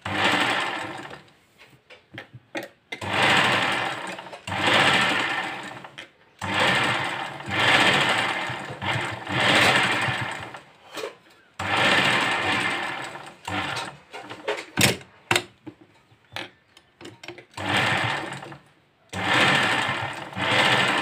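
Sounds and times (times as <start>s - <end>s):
sewing machine stitching: 0.0s - 1.3s, 2.9s - 15.0s, 17.4s - 21.0s.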